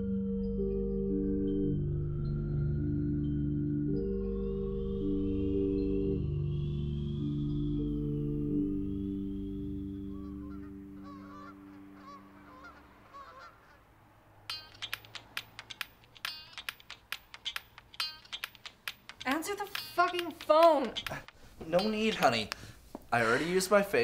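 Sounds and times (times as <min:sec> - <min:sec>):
background music: 0:00.0 - 0:13.6, 0:14.4 - 0:23.6.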